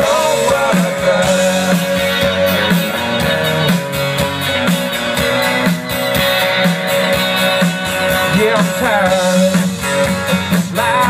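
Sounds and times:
steady drum beat: 0:00.0 - 0:11.0
strummed guitars: 0:00.0 - 0:11.0.

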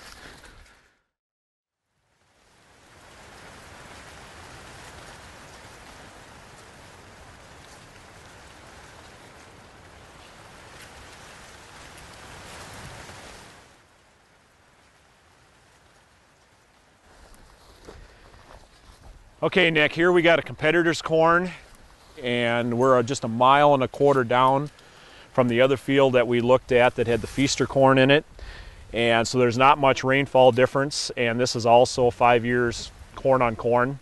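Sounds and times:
faint outdoor ambience: 0:01.8 - 0:34.0
quiet hiss: 0:01.9 - 0:34.0
steady rushing noise with ticks: 0:02.4 - 0:18.0.

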